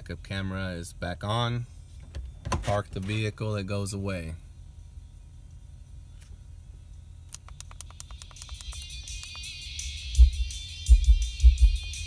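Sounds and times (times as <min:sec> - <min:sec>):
quick ticks: 0:07.3 - 0:09.5
music through car stereo: 0:07.3 - 0:12.0
deep bass thumps: 0:10.2 - 0:12.0.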